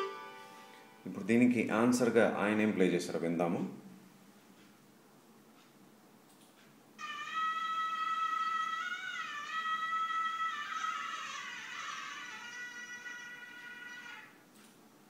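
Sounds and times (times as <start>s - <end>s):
electronic keyboard melody: 0.0s - 1.1s.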